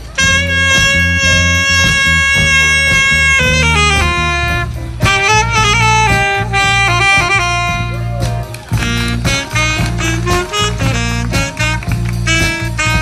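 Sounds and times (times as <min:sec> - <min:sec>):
alto saxophones playing: 0:00.0 - 0:13.0
low band accompaniment: 0:00.0 - 0:13.0.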